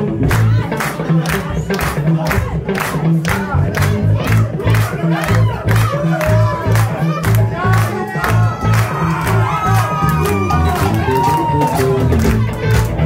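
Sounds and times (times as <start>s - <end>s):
crowd shouting and singing along: 0.0s - 13.0s
disco-funk band playing: 0.0s - 13.0s.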